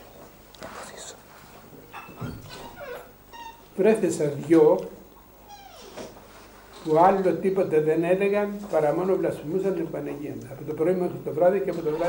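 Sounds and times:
small animal crying: 0:02.6 - 0:03.7, 0:05.4 - 0:05.9.

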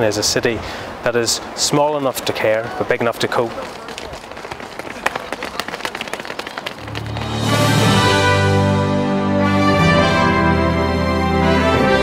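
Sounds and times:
runners' footsteps on a track: 0:01.9 - 0:07.3.

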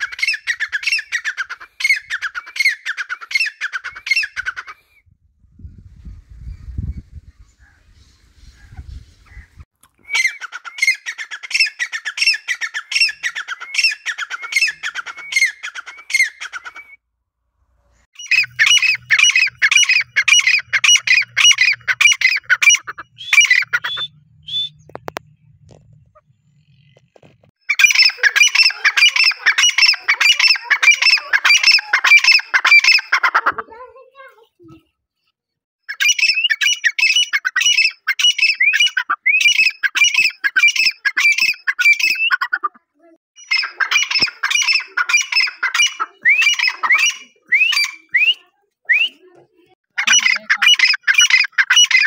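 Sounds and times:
bird calling high-pitched notes: 0:10.0 - 0:16.9, 0:18.2 - 0:25.5, 0:27.6 - 0:33.2, 0:43.4 - 0:49.3.

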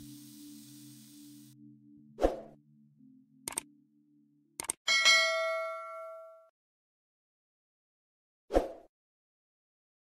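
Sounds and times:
quick mouse clicks: 0:03.5 - 0:03.7
bell ding: 0:04.9 - 0:06.5.

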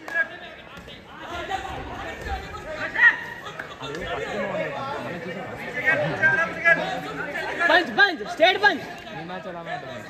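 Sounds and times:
overlapping voices talking: 0:00.0 - 0:10.0.

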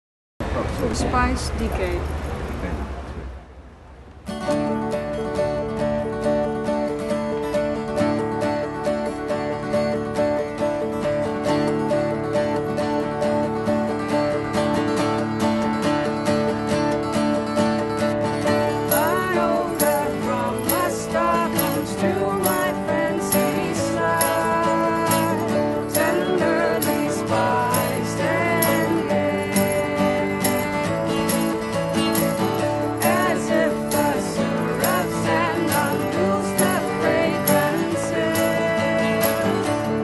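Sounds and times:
acoustic guitars strummed: 0:04.2 - 0:40.0
person singing: 0:18.7 - 0:40.0.

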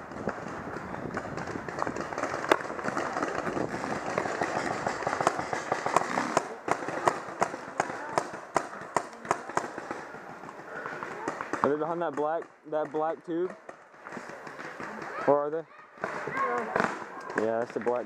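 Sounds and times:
noisy field background: 0:00.0 - 0:18.0
paintball markers popping: 0:00.2 - 0:15.3.

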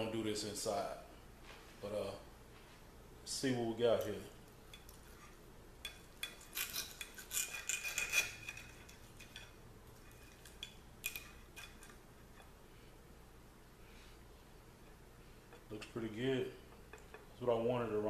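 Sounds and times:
knife and fork scraping a plate: 0:04.7 - 0:12.0.

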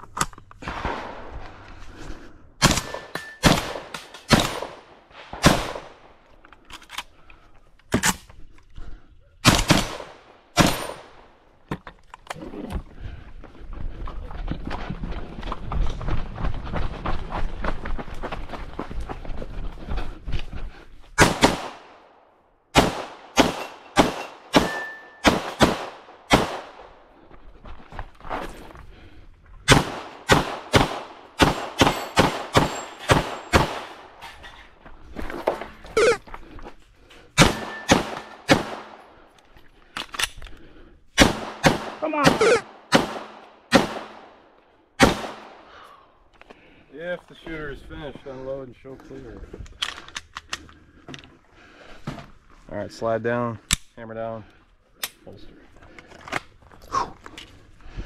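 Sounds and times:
pistol gunshots: 0:02.6 - 0:06.0, 0:09.4 - 0:11.2, 0:21.2 - 0:22.1, 0:22.7 - 0:26.9, 0:29.7 - 0:34.1, 0:37.4 - 0:39.1, 0:41.2 - 0:44.4, 0:45.0 - 0:45.7.

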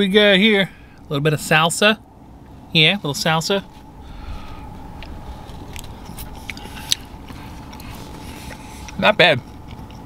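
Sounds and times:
faint hum: 0:00.0 - 0:10.0
person chewing food: 0:04.1 - 0:10.0.

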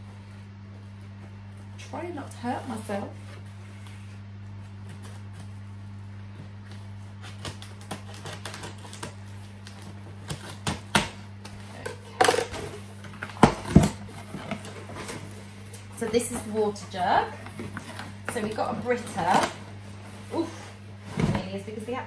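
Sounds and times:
steady low hum: 0:00.0 - 0:22.0
scissors cutting packing tape: 0:07.2 - 0:11.2.

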